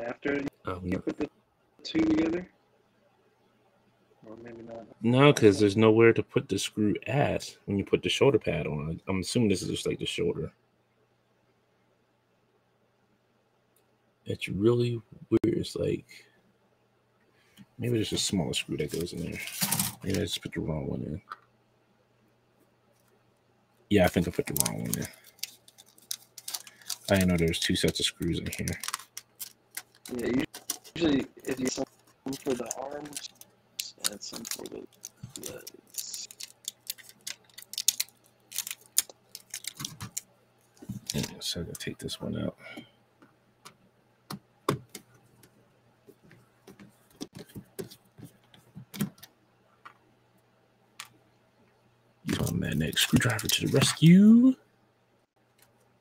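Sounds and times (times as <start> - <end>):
plastic parts clicking and tapping: 24.2 - 31.0, 32.0 - 41.3, 46.7 - 50.0.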